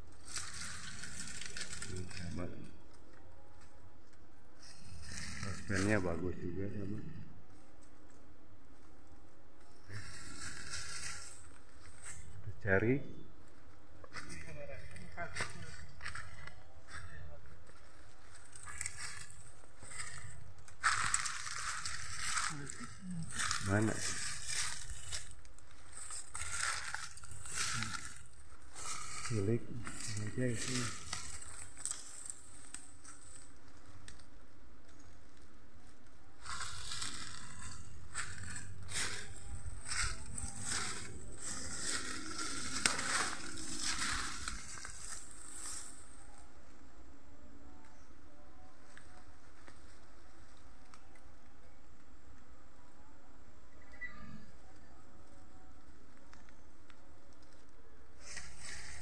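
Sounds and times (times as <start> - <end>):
dry leaves rustling and crackling: 0.0 - 2.7, 4.6 - 6.4, 9.6 - 12.5, 13.5 - 47.1, 48.7 - 51.4, 55.2 - 59.0.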